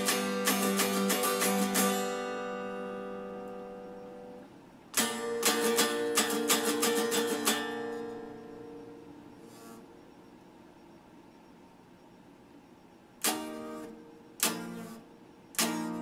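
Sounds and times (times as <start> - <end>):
electric guitar chords strummed: 0.0 - 4.4, 5.0 - 9.5, 13.2 - 16.0.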